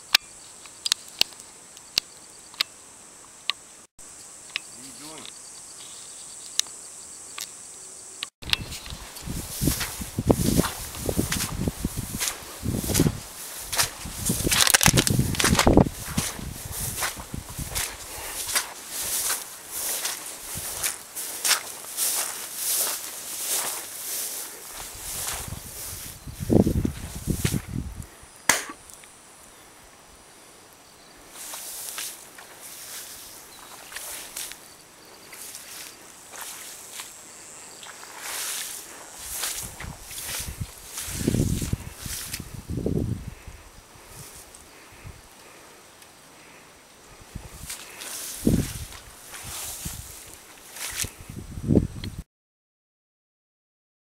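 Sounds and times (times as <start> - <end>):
footsteps swishing through long grass: 8.6 - 28.0, 31.3 - 45.1, 47.1 - 51.7.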